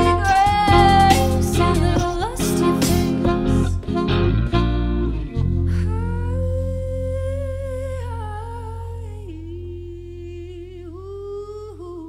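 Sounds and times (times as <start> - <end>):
live band playing: 0.0 - 5.8
singer humming: 0.0 - 12.0
sustained low chord: 2.6 - 12.0.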